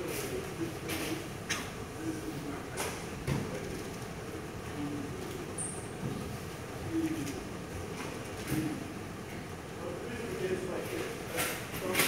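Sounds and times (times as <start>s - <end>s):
hall room hum: 0.0s - 12.0s.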